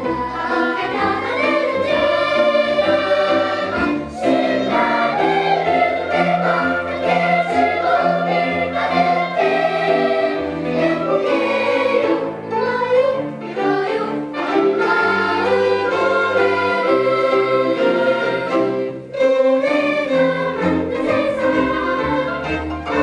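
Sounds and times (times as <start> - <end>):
children's choir singing: 0.0 - 23.0
string accompaniment: 0.0 - 23.0.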